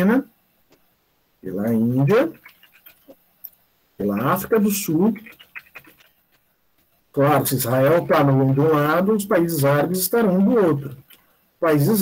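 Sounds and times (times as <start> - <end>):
man speaking: 0.0 - 0.3, 1.4 - 2.5, 4.0 - 6.0, 7.1 - 12.0.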